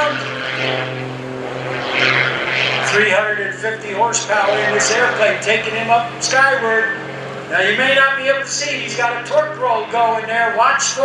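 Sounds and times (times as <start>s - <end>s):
airplane engine and propeller drone: 0.0s - 11.0s.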